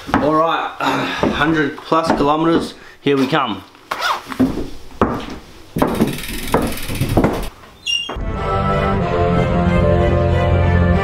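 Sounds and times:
footsteps on wooden floor: 0.0 - 8.2
things being handled: 3.2 - 7.8.

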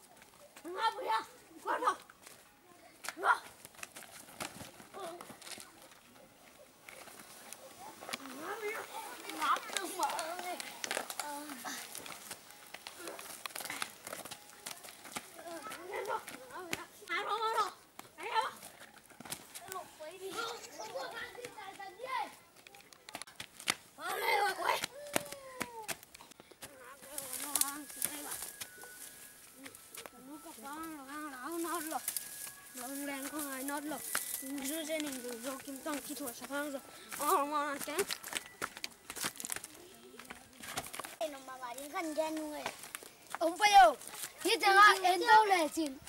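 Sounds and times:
scuffling feet on dirt: 0.0 - 46.0.

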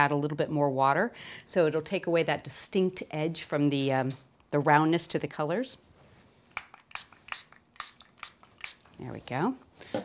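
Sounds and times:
spray bottle spraying: 6.6 - 9.0.

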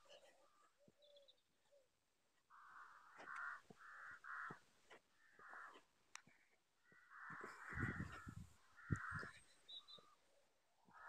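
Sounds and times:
harsh cawing bird calls: 2.5 - 10.2.

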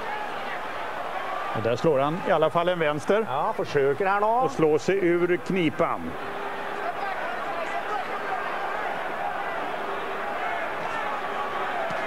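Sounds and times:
crowd murmur: 0.0 - 3.8, 5.2 - 12.0.

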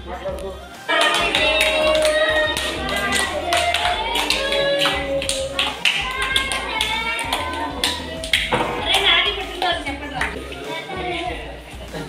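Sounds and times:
people clapping in time: 0.8 - 10.4
children and adults singing: 0.9 - 12.0.

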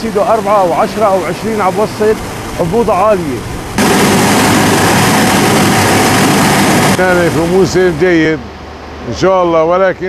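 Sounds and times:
mill machinery running: 3.8 - 7.8.

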